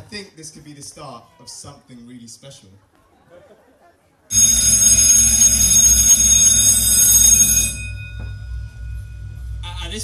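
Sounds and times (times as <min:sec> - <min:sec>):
bell-like ringing with heavy bass: 0:04.3 - 0:10.0
held high note: 0:04.4 - 0:09.9
low hum: 0:05.8 - 0:10.0.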